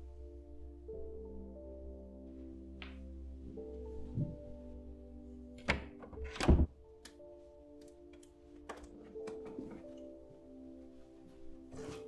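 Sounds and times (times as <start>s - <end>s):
background music drone: 0.0s - 12.0s.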